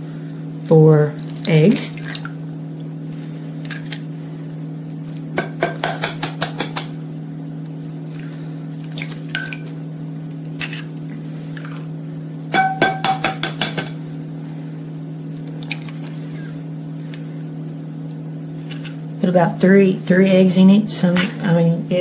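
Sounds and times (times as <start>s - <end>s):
steady low hum: 0.0s - 22.0s
metal bowl ringing: 12.6s - 13.2s.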